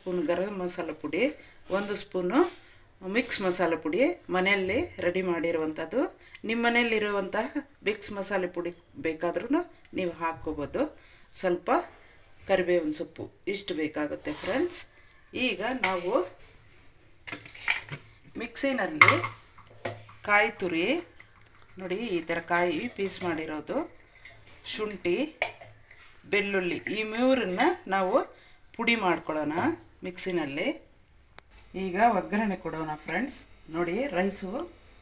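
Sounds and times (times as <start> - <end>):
utensils clinking on counter: 17.3 - 18.1
person talking: 20.2 - 21.1, 21.8 - 24.0, 24.6 - 25.4, 26.2 - 30.9, 31.7 - 34.8.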